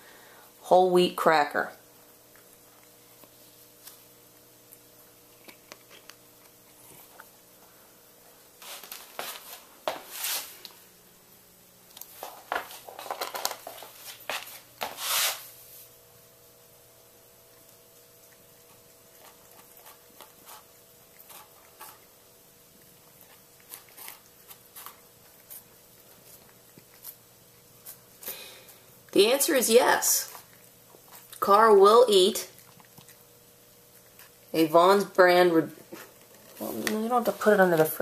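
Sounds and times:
cat crunching cracker: 2.1s - 7.4s, 12.8s - 14.3s, 17.4s - 29.1s, 30.2s - 31.4s, 32.5s - 34.6s, 35.8s - 36.9s.

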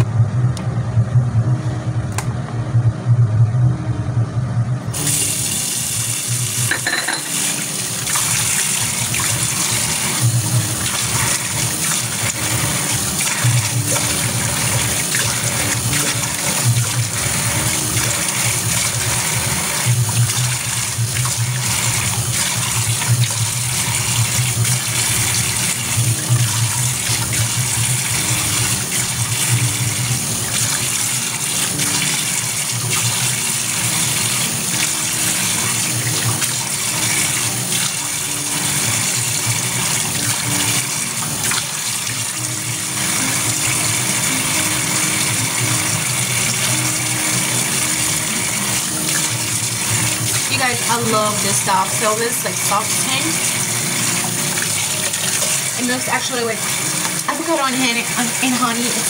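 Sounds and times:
sink tap running: 4.9s - 59.0s.

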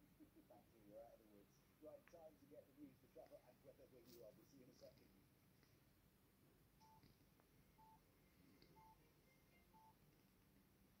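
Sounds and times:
faint short electronic beeps: 7.8s - 10.0s.

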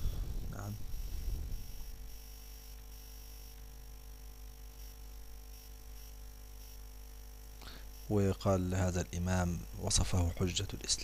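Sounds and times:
faint electrical hum and hiss: 0.0s - 11.0s.

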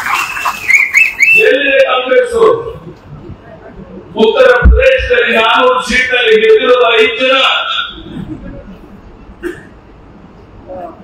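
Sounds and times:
low background noise: 0.0s - 11.0s.

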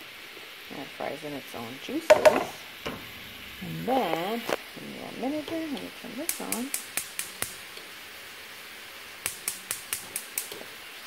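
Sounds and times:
gas stove igniter clicking: 2.1s - 3.3s, 5.4s - 7.9s, 9.2s - 10.7s.

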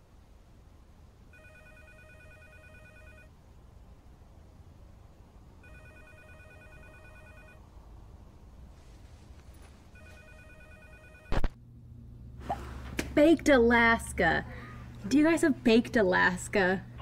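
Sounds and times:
low steady hum: 0.0s - 17.0s
telephone ringing faintly: 1.3s - 3.4s, 5.6s - 7.7s, 9.9s - 11.4s.

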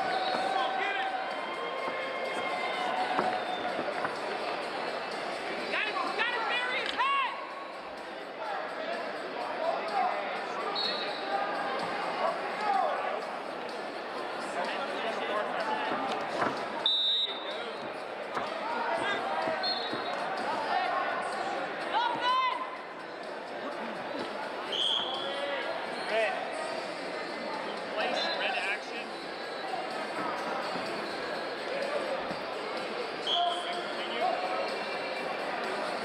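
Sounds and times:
high whistle: 0.0s - 0.7s, 10.7s - 11.3s, 16.8s - 17.6s, 19.6s - 20.2s, 24.7s - 25.4s, 33.2s - 33.8s
shouts and voices in a hall: 0.0s - 36.0s.

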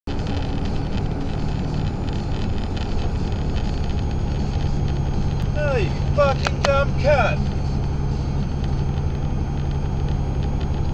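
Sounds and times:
car road and engine noise: 0.0s - 10.9s
man shouting: 5.6s - 7.4s.

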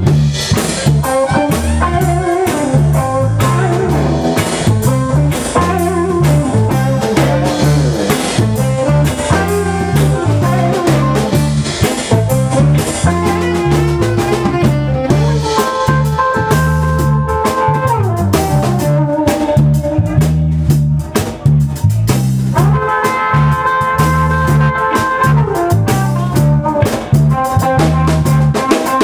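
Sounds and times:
bass guitar: 0.0s - 29.0s
drum kit beat: 0.0s - 29.0s
electric guitars: 0.0s - 29.0s.

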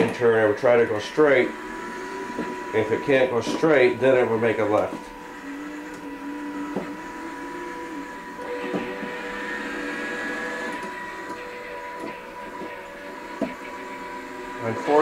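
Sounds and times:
small electric motors whining: 0.0s - 15.0s.

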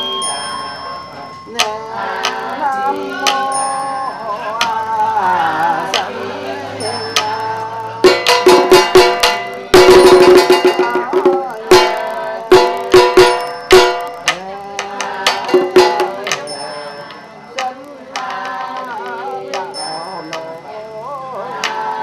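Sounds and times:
sustained tones: 0.0s - 22.0s
small drum struck with stick: 8.0s - 16.6s.

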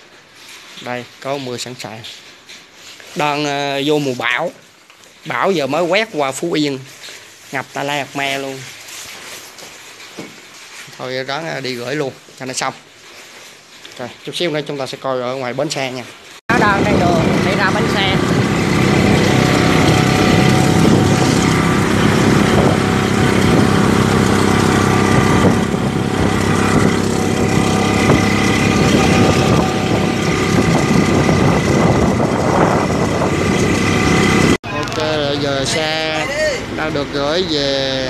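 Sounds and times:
wind rushing over microphone: 16.5s - 34.6s
motorcycle engine running: 16.5s - 38.0s.

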